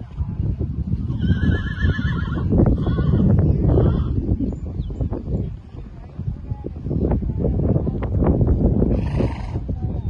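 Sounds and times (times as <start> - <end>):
horse whinnying: 1.1 - 3.2.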